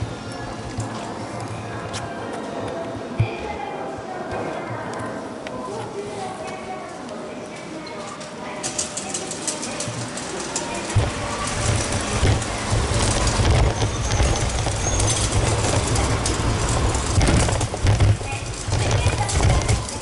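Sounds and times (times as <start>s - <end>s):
street ambience: 0.0s - 20.0s
heavy uneven low rumble: 10.8s - 20.0s.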